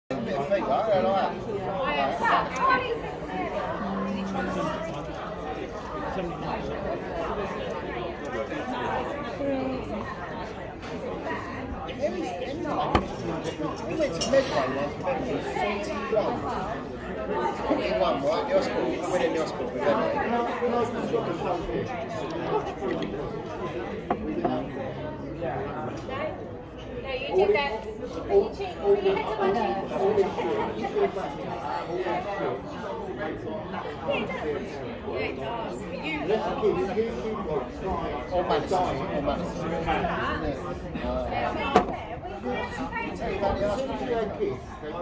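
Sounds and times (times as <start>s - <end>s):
people talking: 0.1s - 45.0s.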